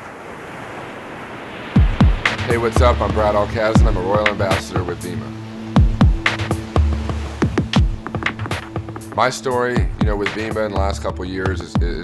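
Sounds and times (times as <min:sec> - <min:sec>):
rushing surf-like noise: 0:00.0 - 0:10.6
music: 0:01.8 - 0:12.0.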